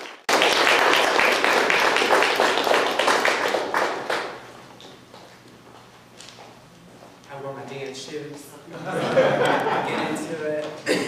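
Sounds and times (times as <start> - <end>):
audience applauding: 0.0 - 4.5.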